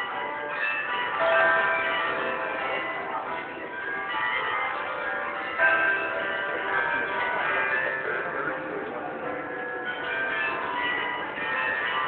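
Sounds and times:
bells ringing a melody: 0.0 - 12.0.

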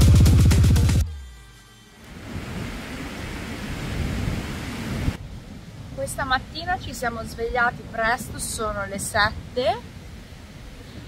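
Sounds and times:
low rumble: 0.0 - 1.5
dance music: 0.0 - 1.8
sea waves breaking on beach: 2.1 - 6.3.

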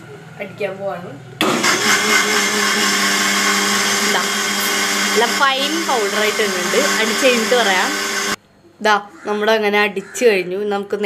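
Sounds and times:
electric blender running: 1.4 - 8.4.

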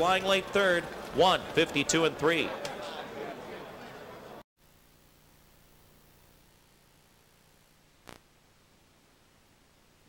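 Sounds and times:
background noise: 0.0 - 10.0
faint steady hum: 4.6 - 10.0
low steady hiss: 4.6 - 10.0.

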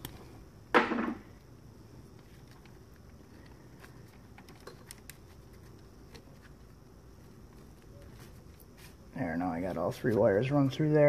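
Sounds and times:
clicks and rustling of wires: 1.2 - 9.0.

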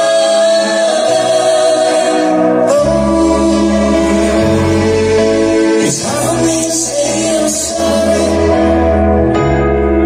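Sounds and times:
singers in close harmony: 0.0 - 9.2.

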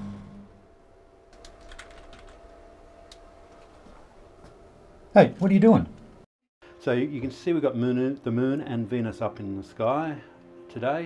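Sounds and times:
computer keyboard typing: 1.4 - 2.4.

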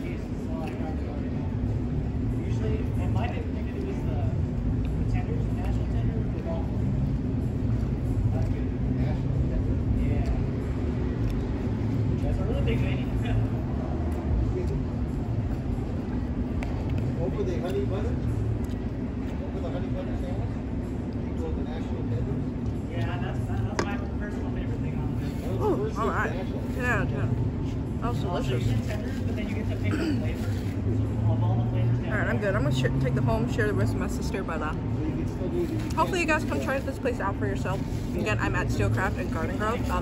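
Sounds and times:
faint voices talking: 0.0 - 40.0.

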